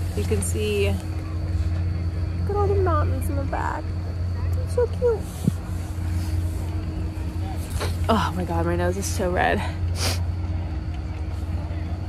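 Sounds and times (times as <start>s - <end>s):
faint steady tone: 0.0s - 12.0s
low mechanical hum: 0.0s - 12.0s.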